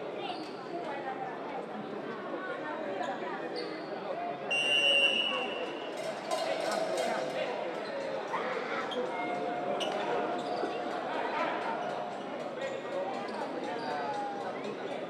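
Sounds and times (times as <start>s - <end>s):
voices in a hall: 0.0s - 15.0s
referee's whistle: 4.5s - 5.8s.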